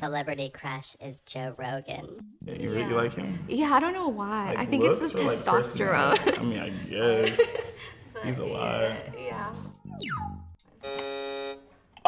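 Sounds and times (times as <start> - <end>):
electronic buzzer: 10.1 - 11.7.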